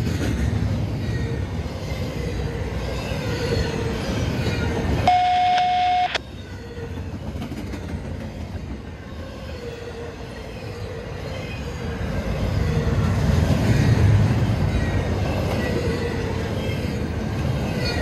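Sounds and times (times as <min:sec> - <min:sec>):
freight train wheels rumbling: 0:00.0 - 0:18.0.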